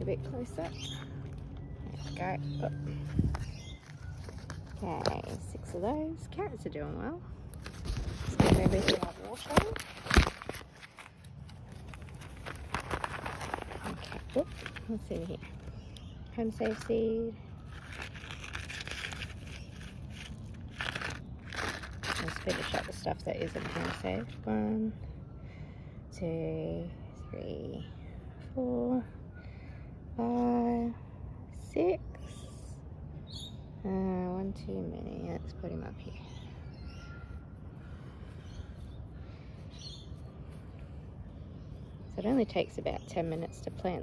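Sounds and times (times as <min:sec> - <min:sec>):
low outdoor rumble: 0:00.0 - 0:44.0
paper packet crinkling: 0:03.0 - 0:05.7, 0:07.5 - 0:15.8, 0:16.5 - 0:24.4
faint bird chirps: 0:36.1 - 0:43.6.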